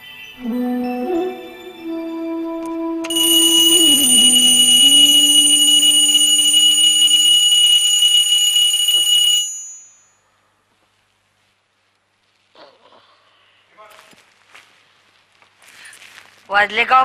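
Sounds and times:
alarm clock ringing: 3.1 - 10.0.

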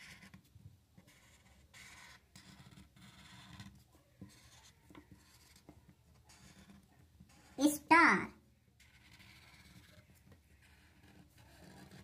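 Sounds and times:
marker rubbing on paper: 0.0 - 7.8, 8.8 - 12.0.

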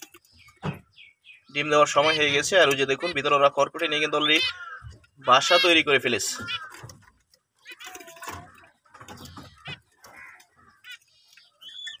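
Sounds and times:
finches chirping: 0.0 - 12.0.

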